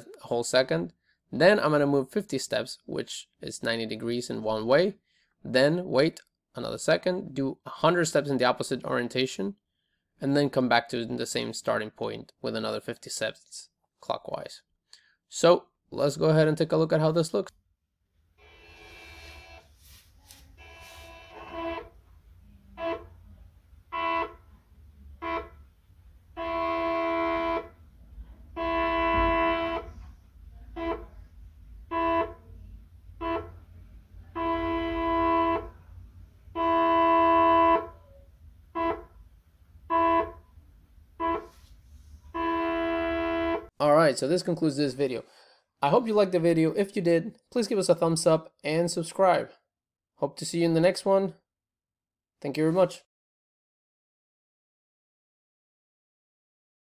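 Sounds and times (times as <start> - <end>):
stepper motor buzzing: 18.4 - 19.7.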